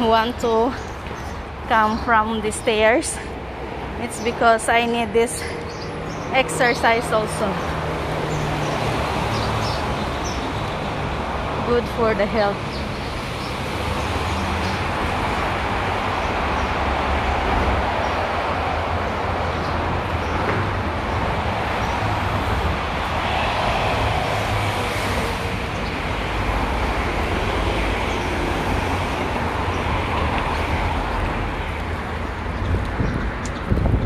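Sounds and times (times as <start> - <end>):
road traffic noise: 0.0 - 34.0.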